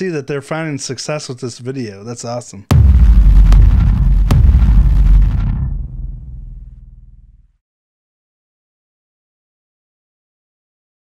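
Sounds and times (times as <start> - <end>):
cinematic boom with deep rumble: 2.7 - 7.4
sharp hits: 2.7 - 7.4.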